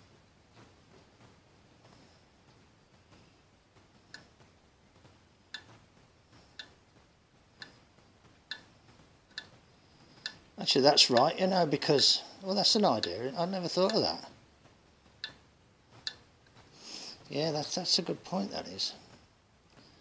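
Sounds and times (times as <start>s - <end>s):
light metallic ticks: 5.5s - 5.8s, 8.5s - 9.6s.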